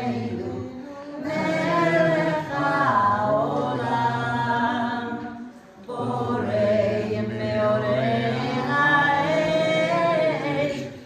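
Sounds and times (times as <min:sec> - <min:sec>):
group singing wordless melody: 0:00.0 - 0:11.0.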